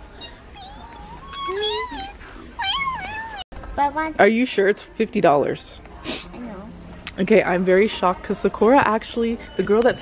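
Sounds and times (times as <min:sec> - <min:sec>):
child making wordless calls: 0:00.2 - 0:03.4.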